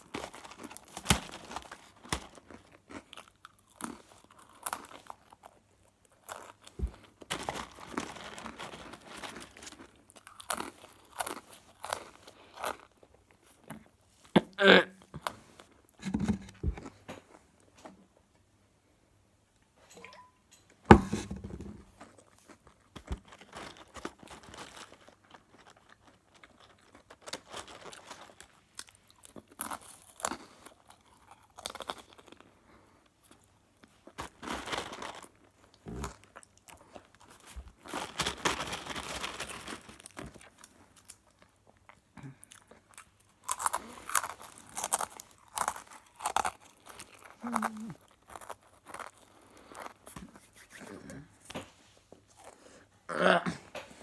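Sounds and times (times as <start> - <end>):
pretzel sticks crunched and chewed: 0.0 - 13.9, 22.0 - 50.4.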